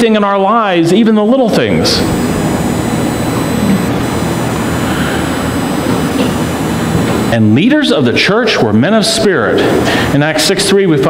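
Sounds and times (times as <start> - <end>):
faint high steady tones: 1.5 - 8.4
low hum: 2.0 - 7.4.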